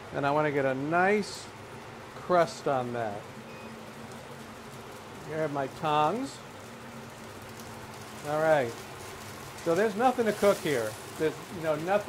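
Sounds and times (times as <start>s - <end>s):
meat sizzling in a pan: 0.8s - 12.0s.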